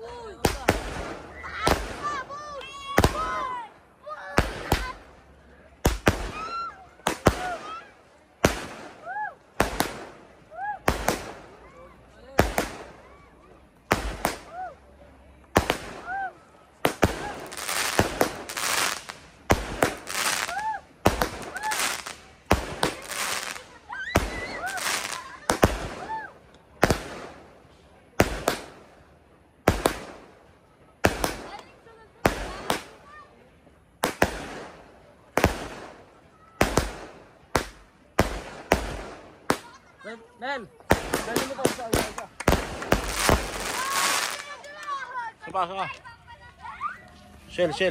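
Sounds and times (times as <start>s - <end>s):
dense crackling hiss: 0.0s - 47.9s
firework cake firing bangs: 0.4s - 3.5s, 4.3s - 5.0s, 5.8s - 11.6s, 12.4s - 13.2s, 13.9s - 14.6s, 15.5s - 27.5s, 28.1s - 28.9s, 29.6s - 30.4s, 31.0s - 31.6s, 32.2s - 33.0s, 34.0s - 39.8s, 40.8s - 44.6s.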